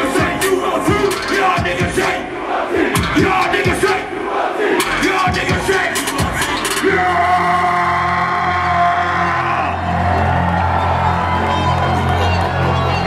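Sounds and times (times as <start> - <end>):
crowd yelling: 0.0 - 13.0
loud hip-hop concert music: 0.0 - 13.0.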